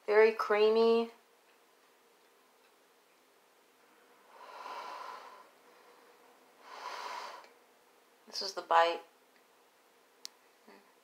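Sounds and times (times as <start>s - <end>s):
person breathing out through nose: 4.3s - 6.0s, 6.6s - 7.5s.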